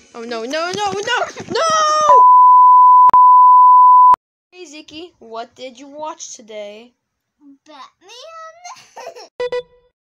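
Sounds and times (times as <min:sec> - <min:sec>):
steady test-tone beep: 0:02.2 - 0:04.2.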